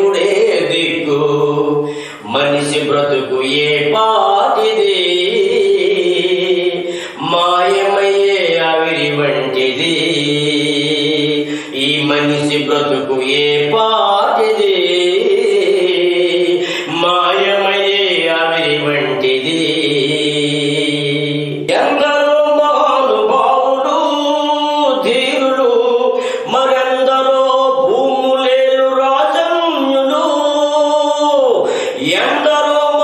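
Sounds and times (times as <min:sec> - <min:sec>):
man singing devotional song: 0:00.0 - 0:33.0.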